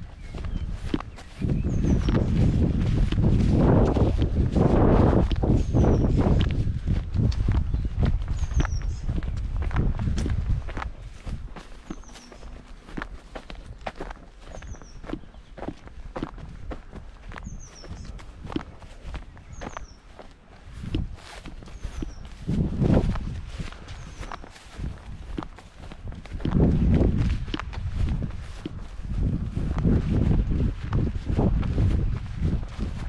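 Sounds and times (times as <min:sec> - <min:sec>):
footsteps on grass: 0:00.0 - 0:33.0.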